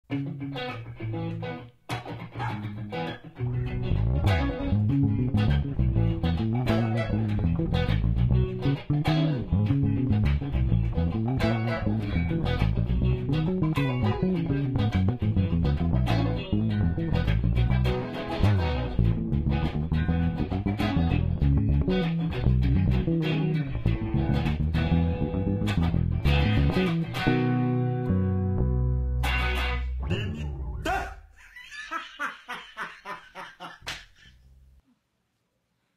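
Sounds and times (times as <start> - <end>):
electric guitar playing a groove: 0.0 - 30.8
electric bass: 0.0 - 30.9.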